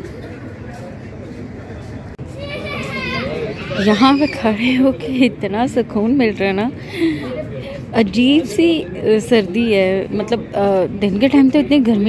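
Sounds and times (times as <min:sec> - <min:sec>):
steady background noise: 0:00.0 - 0:12.0
woman speaking: 0:08.0 - 0:12.0.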